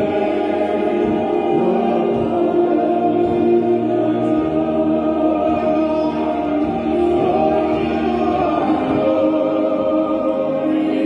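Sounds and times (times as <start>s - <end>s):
choral music sustained chords: 0.0s - 11.0s.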